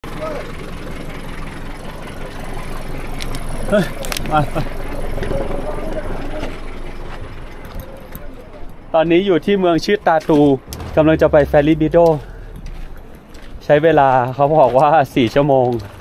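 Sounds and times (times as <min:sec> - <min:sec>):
engine idling: 0:00.0 - 0:08.9, 0:10.4 - 0:14.6
indistinct voices: 0:10.7 - 0:14.2.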